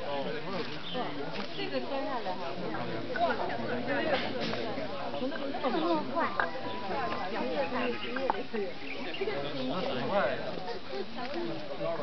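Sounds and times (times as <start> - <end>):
crowd babble of voices: 0.0 - 12.0.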